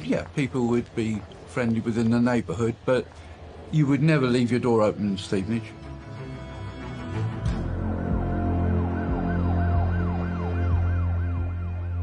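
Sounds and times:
low music drone: 0:03.4 - 0:12.0
siren yelping: 0:08.0 - 0:12.0.

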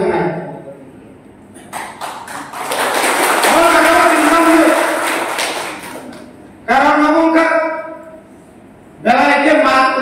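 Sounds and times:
man speaking: 0:03.4 - 0:05.0.

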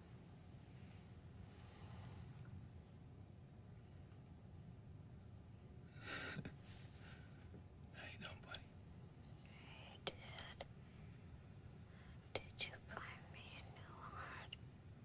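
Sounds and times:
man whispering: 0:07.9 - 0:08.7, 0:09.5 - 0:10.7, 0:12.3 - 0:14.6.

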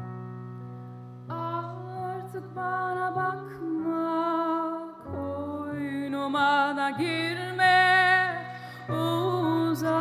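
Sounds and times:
grand piano chords: 0:00.0 - 0:10.0
woman singing: 0:01.3 - 0:10.0.

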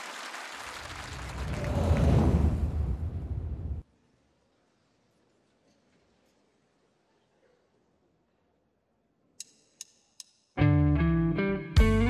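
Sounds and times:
deep low rumble: 0:01.2 - 0:03.8.

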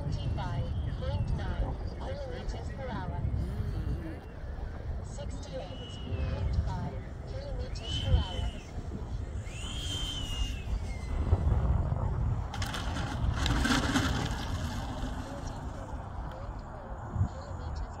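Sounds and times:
electric ducted fan whining: 0:00.0 - 0:18.0
rushing noise of jet rolling: 0:04.5 - 0:17.7.

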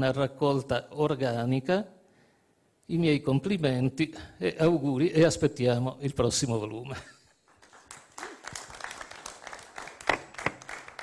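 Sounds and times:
audience applause: 0:07.6 - 0:11.0.

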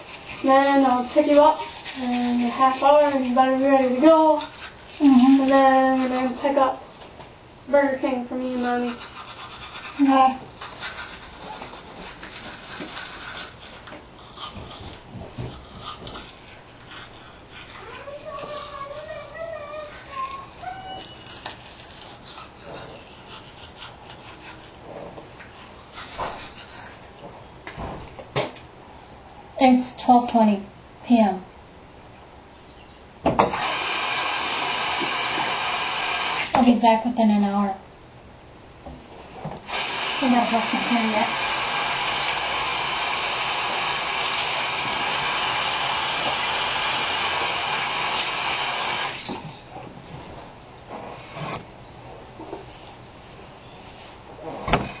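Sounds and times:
toothbrush scrubbing teeth: 0:00.0 - 0:06.8, 0:07.8 - 0:27.2, 0:39.7 - 0:49.3
hair dryer blowing: 0:33.4 - 0:36.6, 0:39.7 - 0:49.4.

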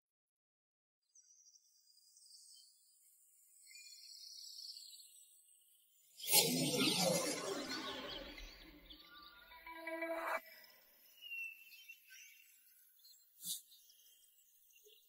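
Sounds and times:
shimmering magic sound effect: 0:06.3 - 0:10.8.

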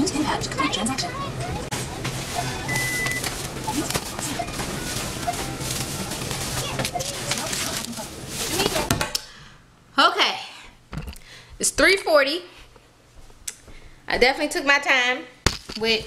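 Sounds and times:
background chatter: 0:00.0 - 0:09.2
store music: 0:01.7 - 0:08.5
short electronic beep: 0:02.7 - 0:03.2.

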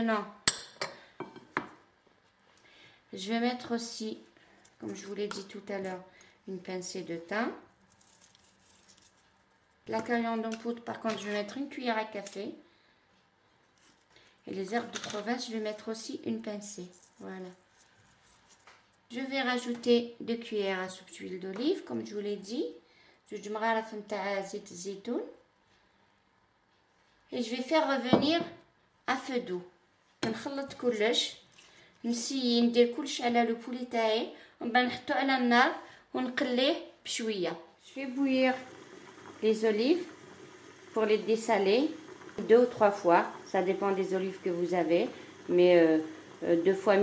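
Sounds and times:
woman speaking: 0:03.1 - 0:07.7, 0:14.5 - 0:17.6, 0:19.1 - 0:25.4, 0:27.3 - 0:28.5, 0:32.0 - 0:38.7, 0:41.0 - 0:47.0
dried herbs crumbled between fingers: 0:07.8 - 0:09.5.

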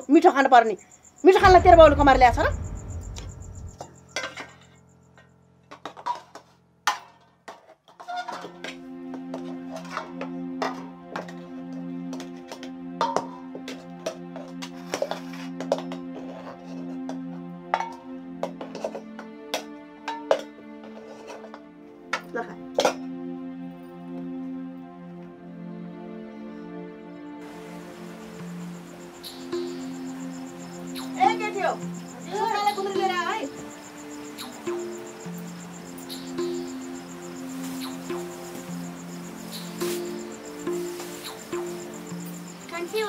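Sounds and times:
soft background music: 0:00.0 - 0:43.0.

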